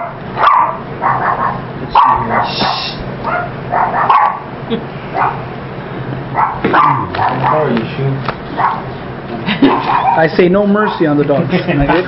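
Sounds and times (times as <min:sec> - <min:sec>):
dog barking: 0:00.0 - 0:04.5, 0:05.1 - 0:05.5, 0:06.3 - 0:07.8, 0:08.5 - 0:08.9, 0:09.7 - 0:11.1.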